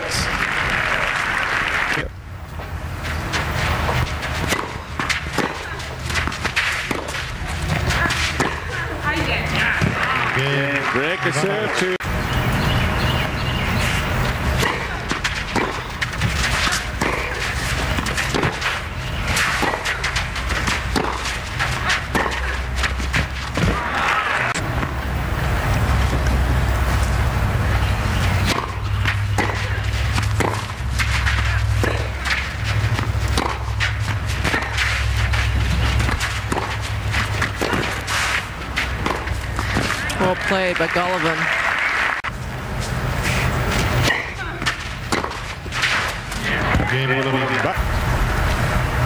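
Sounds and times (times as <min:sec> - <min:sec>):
footsteps on court: 0:02.5 - 0:11.8, 0:13.2 - 0:47.8
tennis ball hit by rackets: 0:03.3 - 0:08.8, 0:14.5 - 0:25.0, 0:27.7 - 0:41.1, 0:43.3 - 0:46.9.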